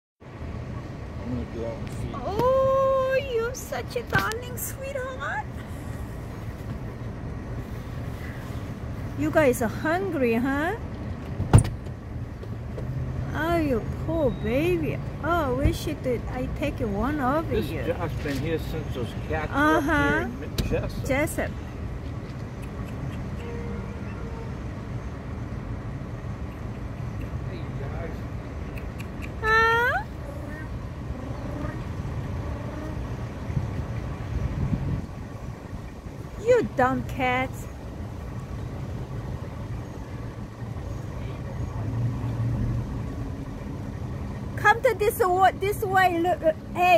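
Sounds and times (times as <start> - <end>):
low outdoor rumble: 0.2 - 46.9.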